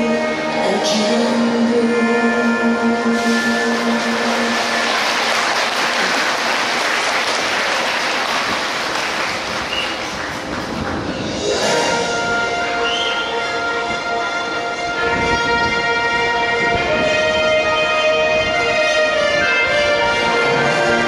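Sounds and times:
background show music: 0.0 - 21.0
audience applauding: 3.6 - 11.3.

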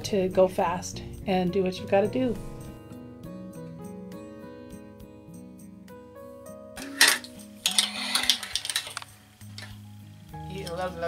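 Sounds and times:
background music of held notes: 0.0 - 11.0.

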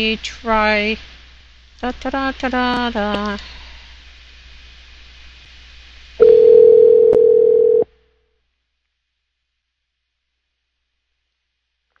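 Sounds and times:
faint telephone line hiss: 0.0 - 8.7
loud steady telephone tone: 6.2 - 8.0.

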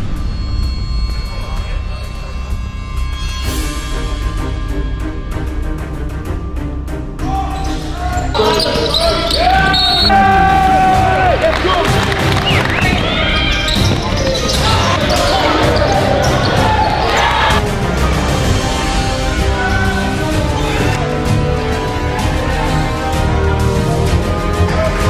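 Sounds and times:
background music with steady beat: 0.0 - 25.0
players calling out: 7.2 - 17.6
sneakers squeaking on hardwood: 8.4 - 10.1, 12.4 - 17.6.

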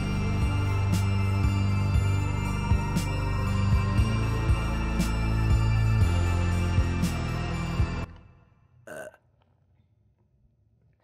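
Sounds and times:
film music: 0.0 - 8.8
person burping: 8.8 - 9.4.

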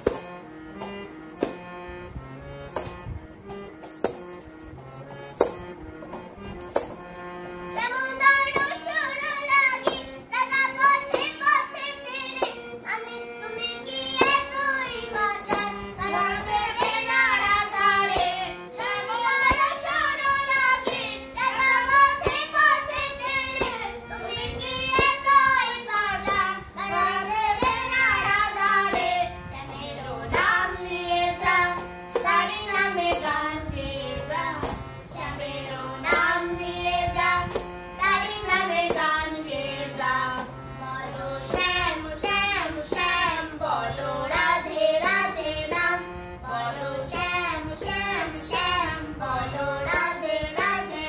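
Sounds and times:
harmonium chords: 0.0 - 51.0
sharp tick keeping beat: 0.0 - 51.0
girl and woman singing: 7.7 - 51.0.

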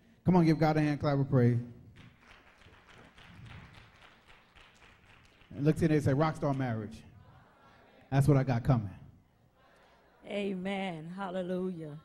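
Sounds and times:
distant hand clapping: 2.0 - 6.7.

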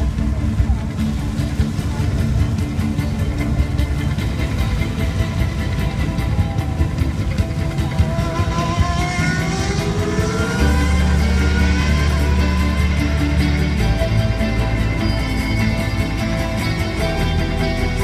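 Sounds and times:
car engine accelerating: 0.0 - 18.0
heavy bass: 0.0 - 18.0
music: 0.0 - 18.0.

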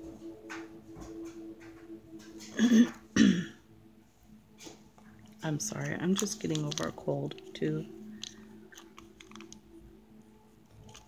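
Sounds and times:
low steady hum: 0.0 - 11.0
clicks of needle and glass beads: 6.0 - 9.6.

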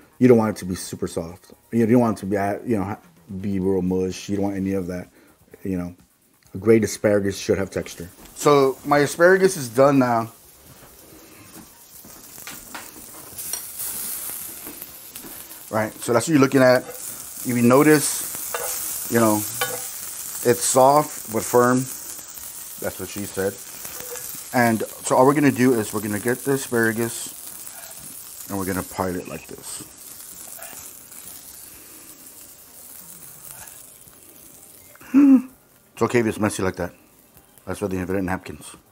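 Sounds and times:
butter sizzling in a skillet: 0.6 - 38.8
skillet scraping on burner: 7.4 - 34.9.

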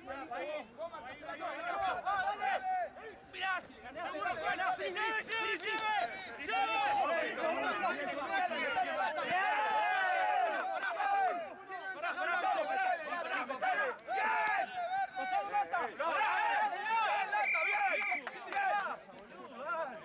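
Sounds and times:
voices shouting and calling out: 0.0 - 20.0.

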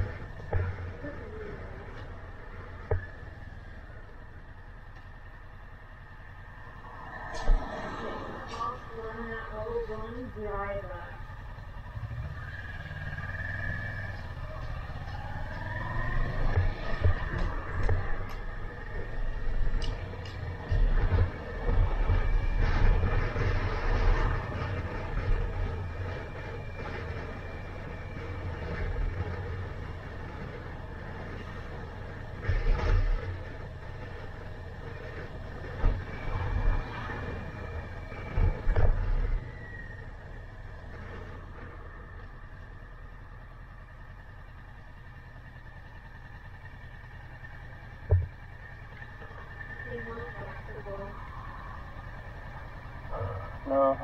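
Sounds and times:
motorcycle engine running: 8.6 - 54.0.

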